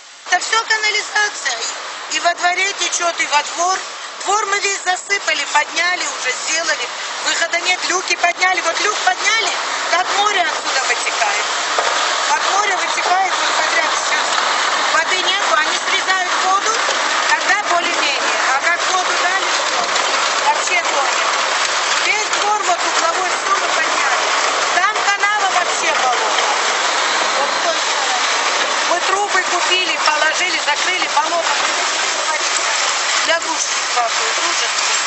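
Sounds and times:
water rushing from manhole: 0.0s - 35.0s
voices: 0.3s - 35.0s.

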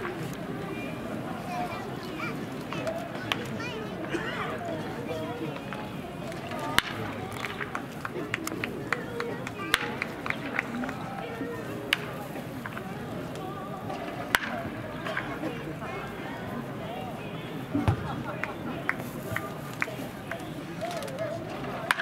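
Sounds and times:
distant voices: 0.0s - 22.0s
bat cracking ball: 14.3s - 15.3s.

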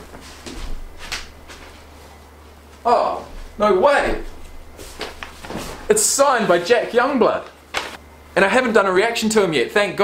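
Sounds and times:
low steady hum: 0.0s - 10.0s
soft rustles and bumps: 3.3s - 5.9s.

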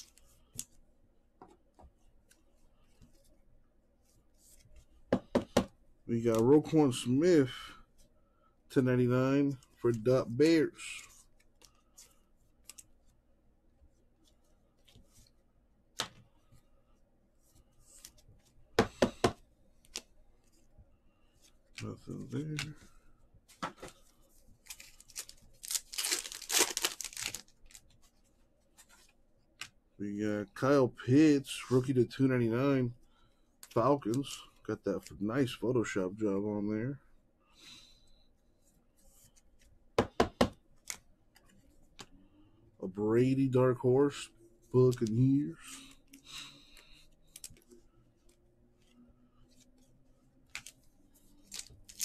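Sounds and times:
cards knocked against tabletop: 5.1s - 5.7s, 18.8s - 19.4s, 40.0s - 40.6s
cards rustling: 6.2s - 7.6s, 17.4s - 29.8s, 44.1s - 52.0s
foil wrapper tearing and crinkling: 24.7s - 27.8s, 51.5s - 52.0s.

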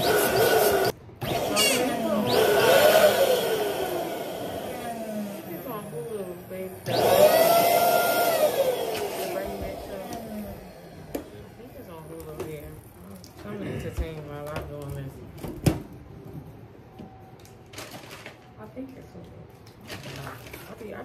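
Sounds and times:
balloon inflator whine: 0.0s - 6.2s, 6.8s - 11.4s.

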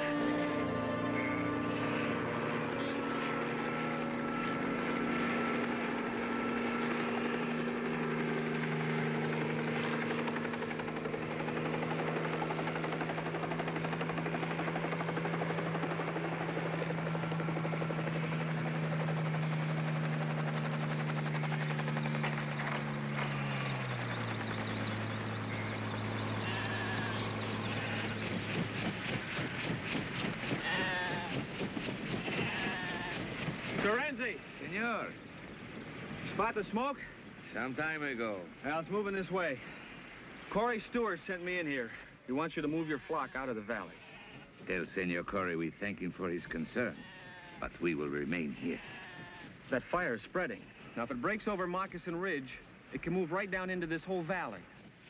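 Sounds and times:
helicopter engine and rotor drone: 0.0s - 41.0s.

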